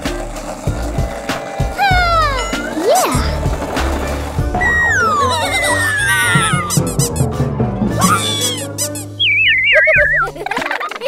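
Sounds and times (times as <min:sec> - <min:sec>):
cartoon background music: 0:00.0 - 0:11.0
rising and falling whoop: 0:04.6 - 0:06.8, 0:08.0 - 0:08.6
falling whistle-like glide: 0:04.6 - 0:06.9, 0:08.0 - 0:10.2.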